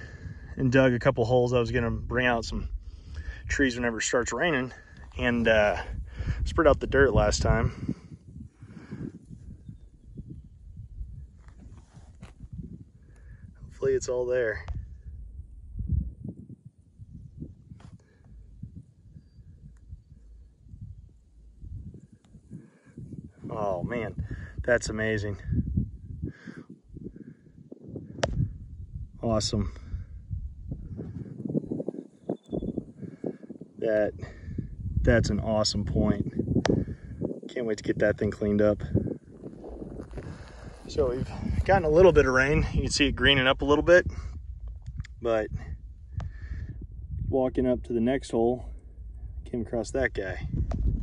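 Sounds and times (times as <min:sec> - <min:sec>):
faint low rumble: 0:00.0 - 0:31.3, 0:34.0 - 0:51.0
wind buffeting microphone: 0:00.0 - 0:51.0.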